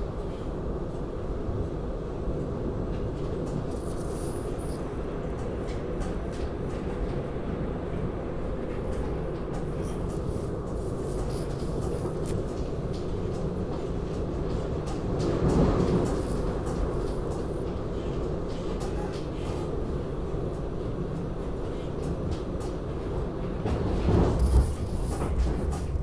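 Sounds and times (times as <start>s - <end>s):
train wheels rumbling on rail: 0.0s - 26.0s.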